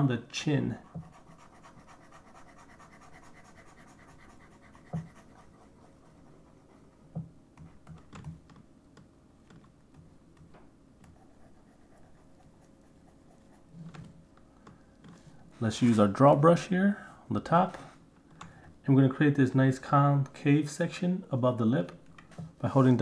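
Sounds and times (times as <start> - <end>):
faint steady hum: 0.0 - 23.0
computer keyboard and mouse clicks: 7.6 - 8.6.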